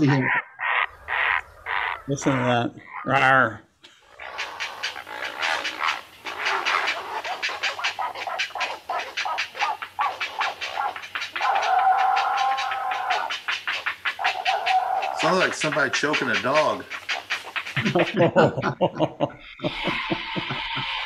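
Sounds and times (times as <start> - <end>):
heron harsh rasping calls: 0.0 - 18.2
heron hoarse croak: 0.0 - 18.8, 19.4 - 21.0.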